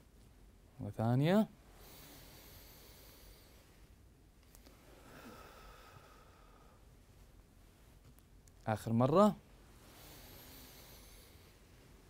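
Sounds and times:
slow quiet breathing: 1.6 - 8.0, 9.6 - 12.0.

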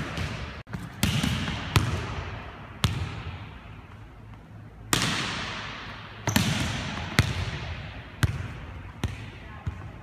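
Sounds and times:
low steady hum: 0.0 - 10.0
volleyball smack echoing: 4.9 - 9.3.

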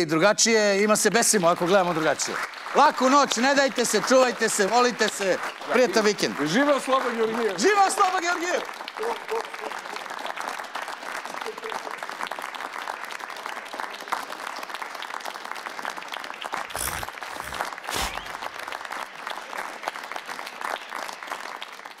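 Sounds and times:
audience applauding: 1.1 - 22.0.

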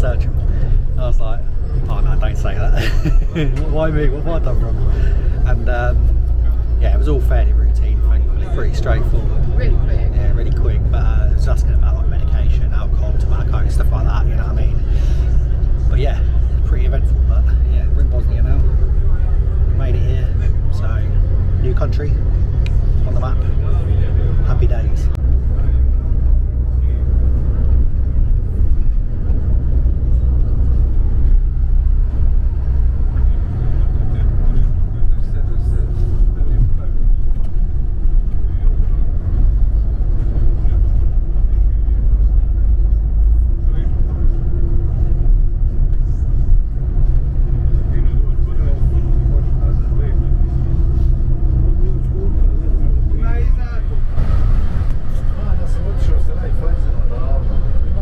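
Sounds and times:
coach engine and tyres rumbling: 0.0 - 58.0
humming drone: 0.0 - 58.0.

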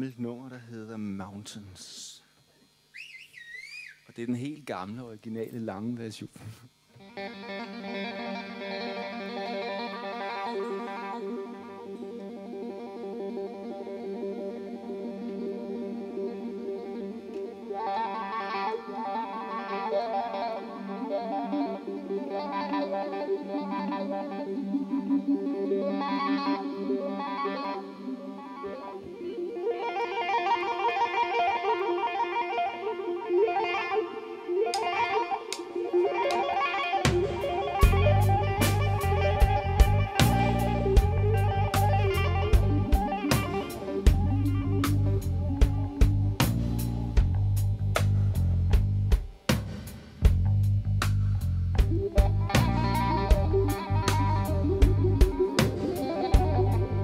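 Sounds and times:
electric guitar chords: 6.7 - 57.0
bass guitar: 36.9 - 49.6, 50.2 - 57.0
drum and cymbal hits: 37.0 - 56.8.

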